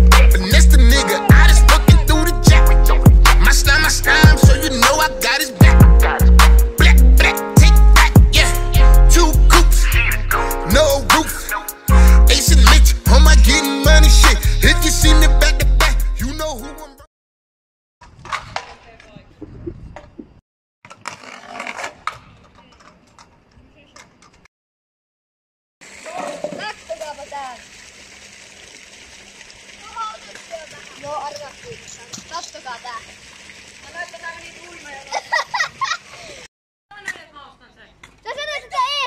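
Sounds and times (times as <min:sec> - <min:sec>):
young voices talking and shouting: 0:00.9 - 0:02.7, 0:29.8 - 0:33.1, 0:36.9 - 0:39.0
scooter wheels rolling on concrete: 0:18.0 - 0:24.5, 0:25.8 - 0:39.0.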